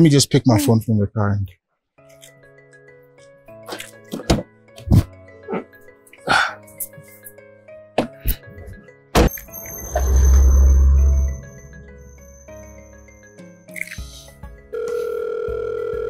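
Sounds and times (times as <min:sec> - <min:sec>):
film music: 0:04.8 - 0:14.8
loud deep rumble: 0:09.8 - 0:13.0
phone ringback tone: 0:14.7 - 0:16.0.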